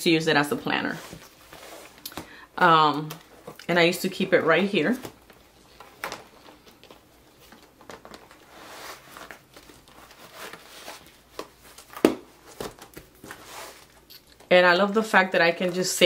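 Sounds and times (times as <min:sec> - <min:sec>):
paper and plastic rustling: 0:04.8 - 0:14.5.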